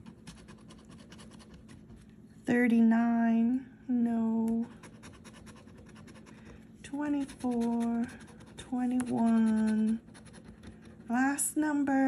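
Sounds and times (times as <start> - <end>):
coin scratching lottery ticket: 7.1 - 10.8.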